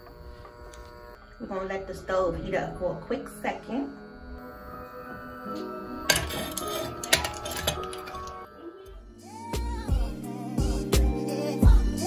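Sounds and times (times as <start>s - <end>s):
background music: 1.4s - 12.0s
metal irons clinking: 6.1s - 8.5s.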